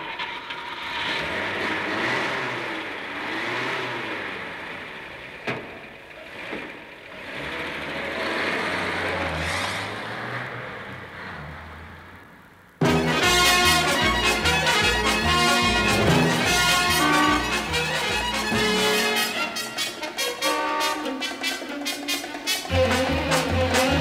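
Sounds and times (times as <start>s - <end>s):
car engine revving and driving off: 0.0s - 24.0s.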